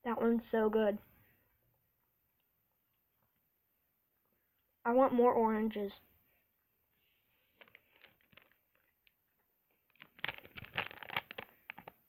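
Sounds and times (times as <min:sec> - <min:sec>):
plastic bag crinkling: 0:07.5 - 0:12.0.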